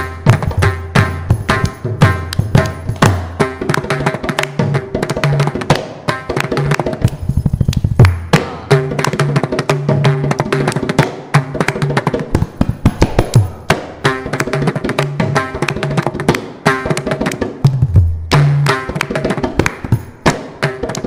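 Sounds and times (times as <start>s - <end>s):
hand drums percussion solo: 0.0s - 21.0s.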